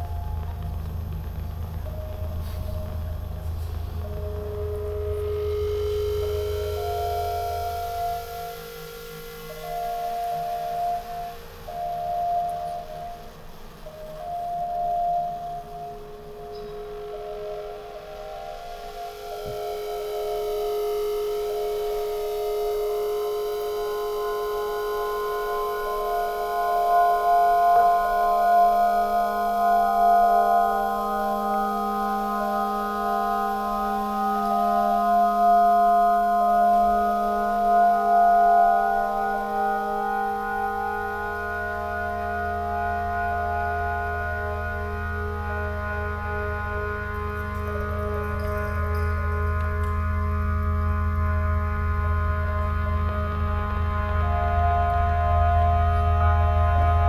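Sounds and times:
low rumble: 0.0 - 8.0
electroacoustic ringing tones: 0.0 - 57.0.

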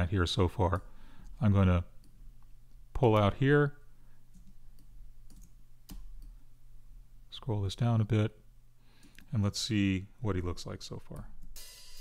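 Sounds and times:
low electrical hum: 0.0 - 12.0
computer mouse clicks: 4.3 - 6.4.

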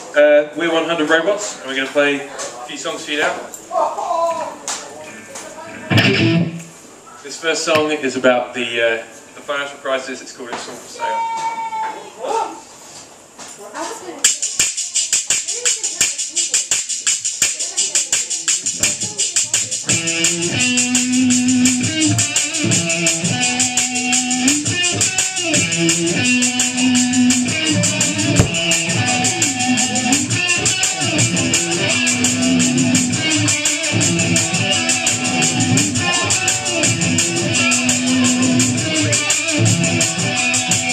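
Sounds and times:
guitar and bass riff: 5.1 - 6.8, 19.8 - 40.9
percussion ticks: 14.2 - 40.9.

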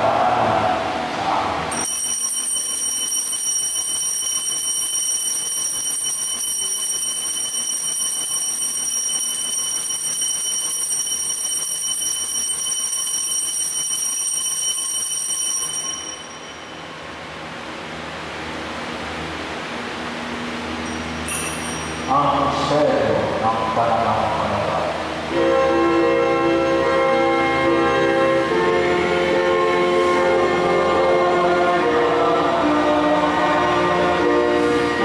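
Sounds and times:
altar bell ringing: 1.7 - 17.1, 20.8 - 22.2.

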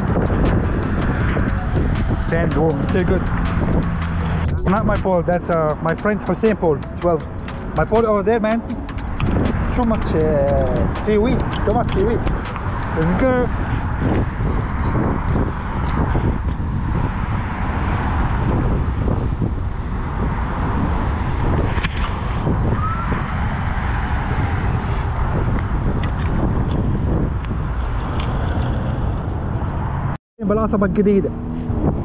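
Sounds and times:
camera handling rumble: 9.0 - 13.0, 26.0 - 29.8.

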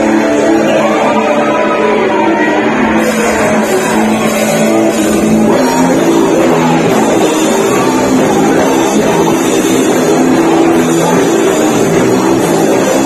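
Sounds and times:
distorted electric guitars: 0.0 - 13.0
drums: 0.0 - 13.0.

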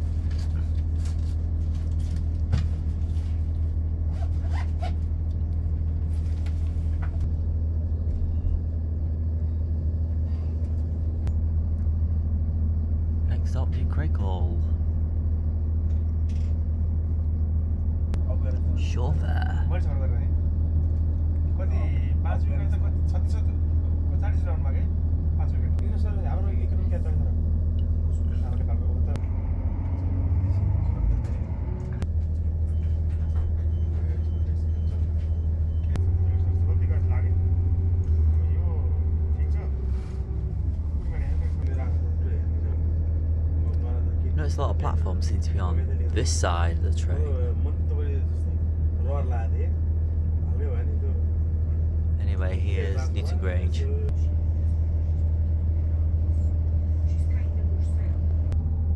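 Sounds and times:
diesel engine drone: 0.0 - 58.9.

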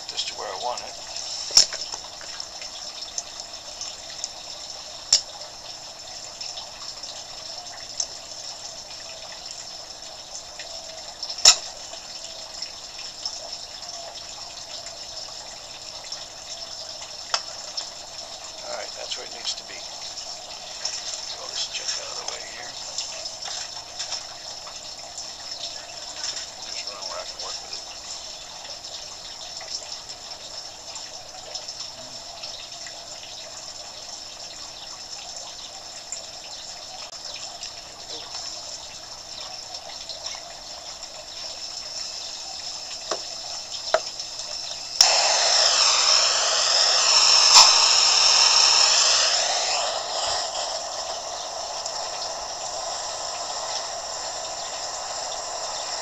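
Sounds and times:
gas flame hissing: 0.0 - 6.0, 18.6 - 24.3, 41.5 - 56.0.

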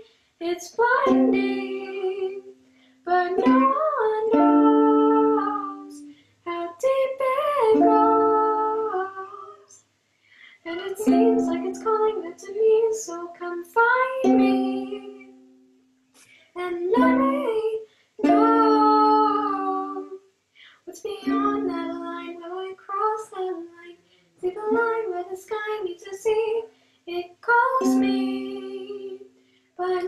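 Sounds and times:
ukulele: 0.0 - 9.6, 10.7 - 20.3, 21.0 - 30.0
girl singing a ballad: 0.0 - 9.8, 10.4 - 15.6, 16.3 - 30.0.

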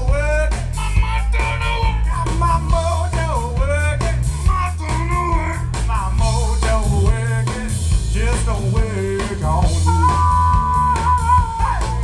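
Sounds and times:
live blues band playing: 0.0 - 12.0
man singing into a microphone: 0.0 - 12.0.

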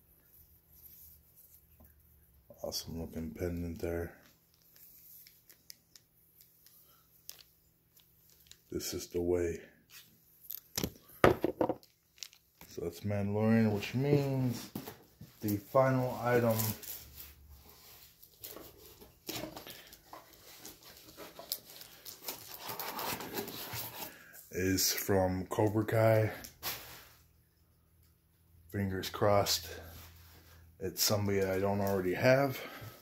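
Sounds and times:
plastic sleeve rustling: 0.3 - 9.1, 9.9 - 12.8, 15.4 - 24.2.

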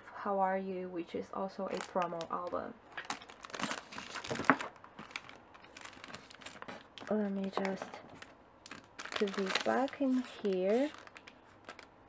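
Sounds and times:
plastic sleeve crinkling: 1.6 - 12.0.

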